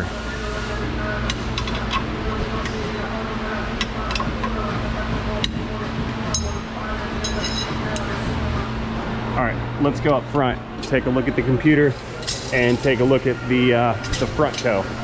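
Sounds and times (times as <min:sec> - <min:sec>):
workshop hum: 0:00.0 - 0:15.0.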